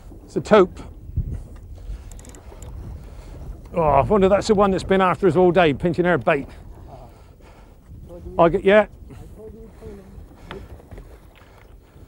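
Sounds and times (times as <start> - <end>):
sea noise: 0.0 - 12.0
wind rumble on microphone: 0.0 - 12.0.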